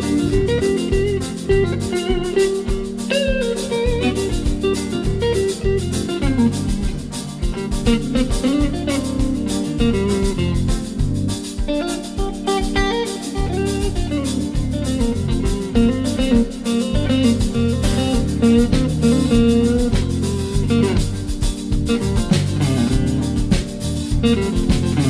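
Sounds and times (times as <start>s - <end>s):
bass guitar: 0.0s - 25.0s
drums: 0.0s - 25.0s
electric guitar lead with bent notes: 0.0s - 25.0s.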